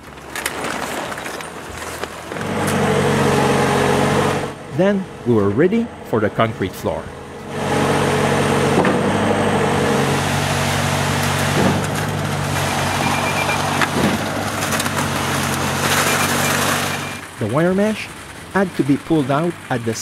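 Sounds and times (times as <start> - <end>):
diesel engine running under load: 0.0 - 20.0.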